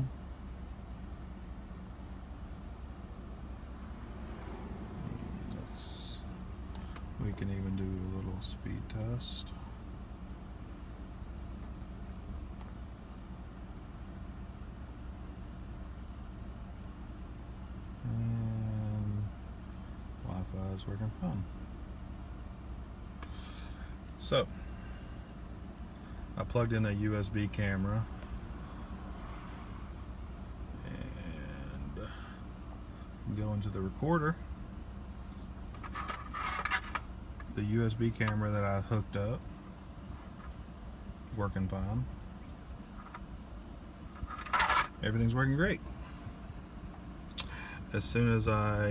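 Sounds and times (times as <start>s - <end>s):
car engine idling: 0.0s - 48.9s
held low hum: 0.0s - 48.9s
scraping and rustling handling noise: 35.2s - 37.6s, 40.1s - 40.7s, 44.1s - 45.0s.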